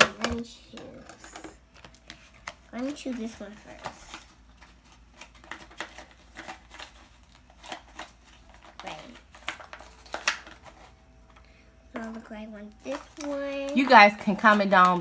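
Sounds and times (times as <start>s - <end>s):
plastic bottles clicking together: 7.6s - 10.8s.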